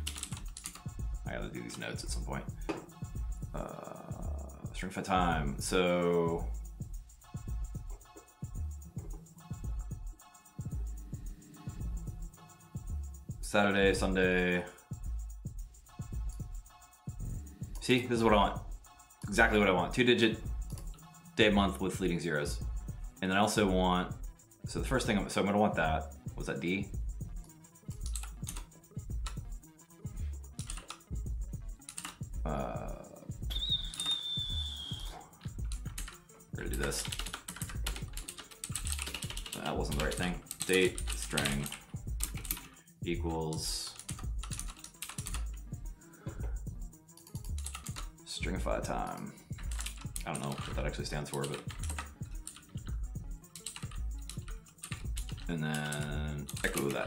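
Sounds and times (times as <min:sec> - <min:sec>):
typing on computer keyboard: 0:00.0 - 0:00.9, 0:28.0 - 0:28.7, 0:30.6 - 0:31.0, 0:31.8 - 0:32.2, 0:36.8 - 0:42.7, 0:43.5 - 0:45.5, 0:47.2 - 0:48.1, 0:49.5 - 0:52.9, 0:53.6 - 0:57.0
background music: 0:00.0 - 0:57.0.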